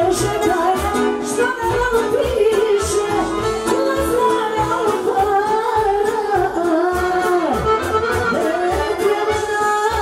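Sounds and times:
accordion: 0:00.0 - 0:10.0
bass beat: 0:00.0 - 0:10.0
woman singing through microphone: 0:00.0 - 0:10.0.

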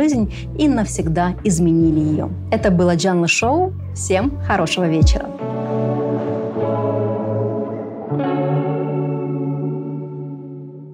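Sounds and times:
held music chords: 0:04.1 - 0:10.9.

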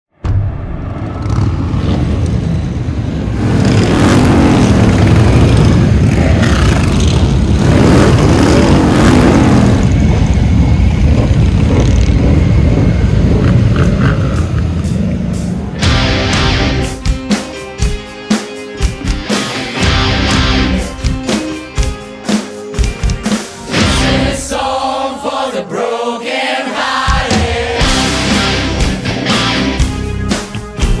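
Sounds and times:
drum hits: 0:00.2 - 0:02.1, 0:15.8 - 0:24.3, 0:27.0 - 0:31.0
motorcycle engines rumbling and revving: 0:00.3 - 0:17.4, 0:19.0 - 0:22.0, 0:22.9 - 0:24.7, 0:27.2 - 0:31.0.

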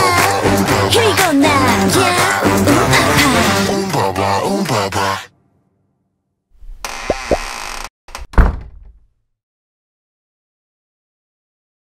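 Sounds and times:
pop song: 0:00.0 - 0:05.3
heavy thunk: 0:08.3 - 0:09.0.

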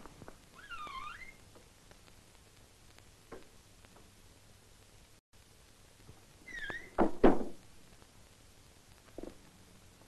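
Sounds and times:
wooden door creaking: 0:00.6 - 0:01.4, 0:06.4 - 0:07.6
door banging against frame: 0:06.8 - 0:07.6.

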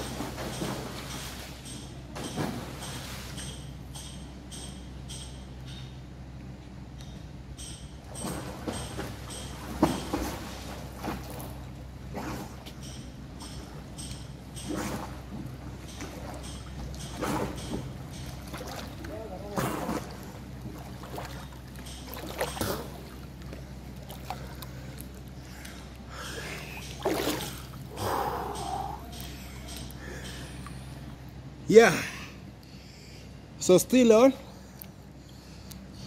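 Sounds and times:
swimmer splashing water: 0:00.0 - 0:03.4, 0:14.6 - 0:29.1
steady low hum: 0:00.0 - 0:36.0.

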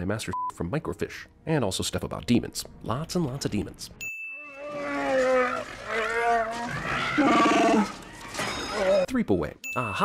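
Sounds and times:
wavering growling calls: 0:04.5 - 0:09.1.

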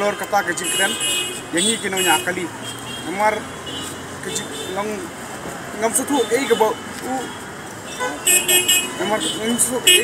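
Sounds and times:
street traffic: 0:00.0 - 0:10.0
voices talking: 0:00.0 - 0:10.0
vehicle horn beeps: 0:02.0 - 0:02.3.

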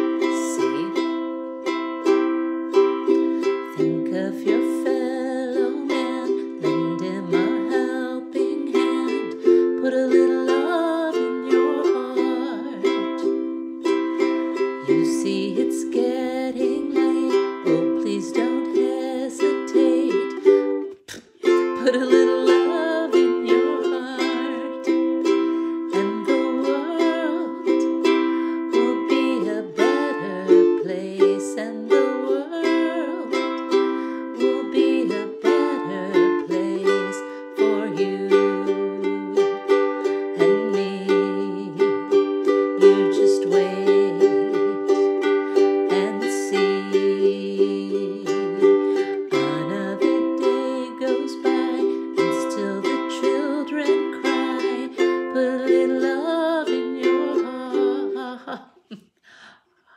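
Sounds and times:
ukulele strummed: 0:00.0 - 0:59.0.

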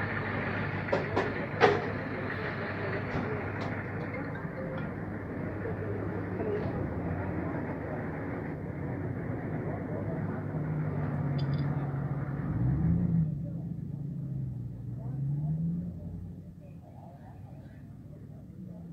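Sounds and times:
car engine running: 0:00.0 - 0:18.9
street noise rumble: 0:00.0 - 0:18.9.

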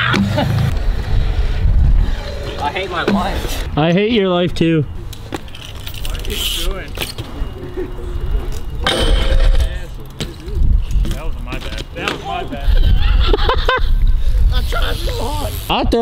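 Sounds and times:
bikes rolling on concrete: 0:00.0 - 0:16.0
voices calling out: 0:02.0 - 0:13.4.

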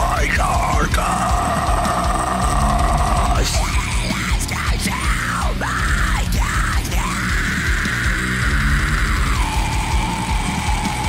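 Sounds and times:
heavy metal band playing: 0:00.0 - 0:11.0.

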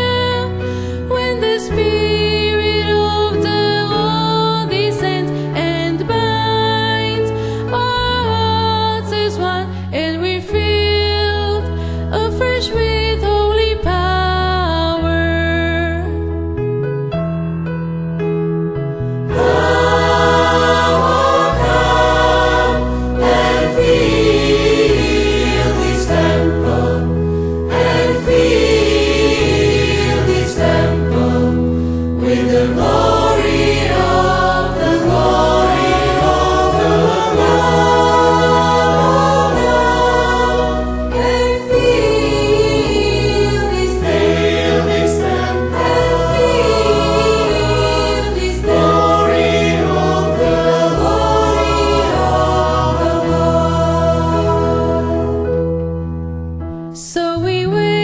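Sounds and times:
choir singing with accompaniment: 0:19.2 - 0:55.6.

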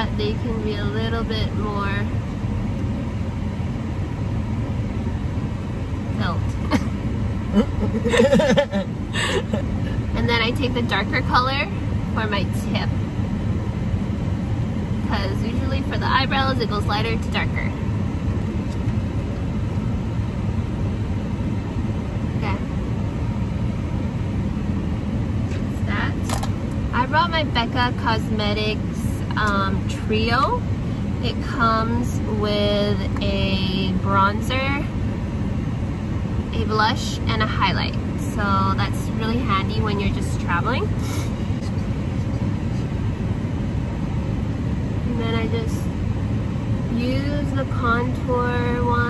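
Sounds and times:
car cabin rumble: 0:00.0 - 0:35.2
woman laughing: 0:06.7 - 0:06.9, 0:07.5 - 0:09.7.

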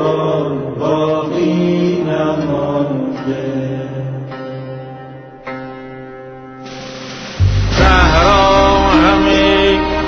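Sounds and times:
person singing a slow lament: 0:00.0 - 0:04.8, 0:07.7 - 0:10.0
musical accompaniment: 0:00.0 - 0:10.0.

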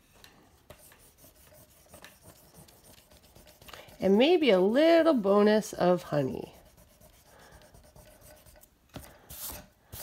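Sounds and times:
eraser scrubbing paper: 0:00.7 - 0:04.5, 0:06.3 - 0:08.6.

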